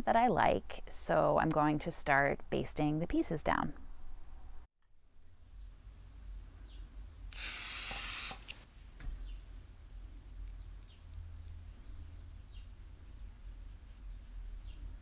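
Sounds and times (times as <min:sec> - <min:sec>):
aerosol spray hiss: 0:07.3 - 0:08.6.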